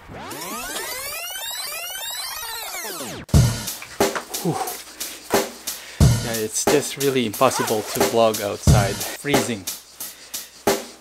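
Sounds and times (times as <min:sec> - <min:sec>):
rising and falling pitch sweep: 0:00.0 - 0:03.3
music with heavy drum beat: 0:03.3 - 0:11.0.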